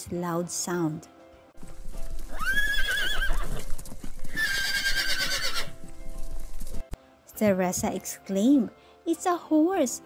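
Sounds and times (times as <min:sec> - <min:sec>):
horse whinnying: 0:02.3 - 0:05.8.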